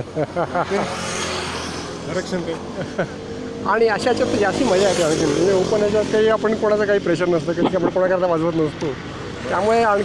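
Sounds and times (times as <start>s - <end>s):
road vehicle passing: 0.0s - 10.0s.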